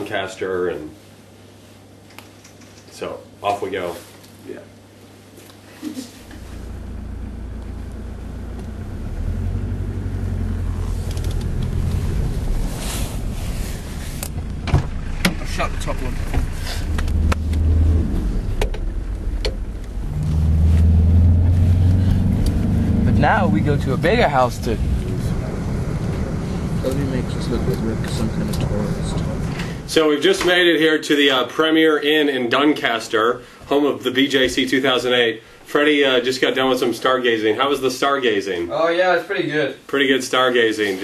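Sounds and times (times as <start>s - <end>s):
car engine rumble inside cabin: 6.3s - 30.0s
faint voices: 23.1s - 29.9s.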